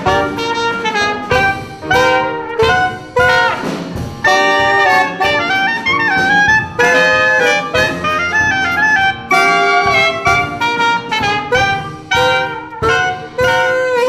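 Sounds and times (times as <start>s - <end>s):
alto saxophone: 0.0s - 14.0s
brass band playing jazz: 0.0s - 14.0s.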